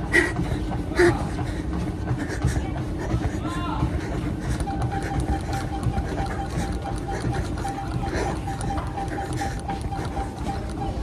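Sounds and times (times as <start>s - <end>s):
footfalls on treadmill belt: 0.0s - 11.0s
treadmill hum with high note: 0.0s - 11.0s.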